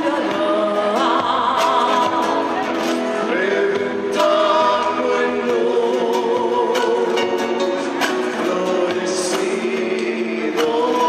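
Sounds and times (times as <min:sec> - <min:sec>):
woman singing into a microphone: 0:00.0 - 0:02.9
live band playing: 0:00.0 - 0:11.0.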